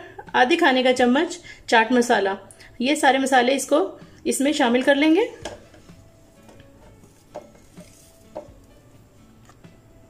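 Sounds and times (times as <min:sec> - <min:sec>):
spatula scraping a plate: 0:05.7 - 0:08.5.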